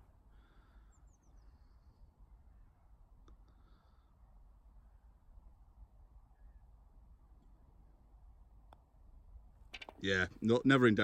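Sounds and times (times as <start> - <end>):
golf ball dropping into hole: 9.7 - 10.0.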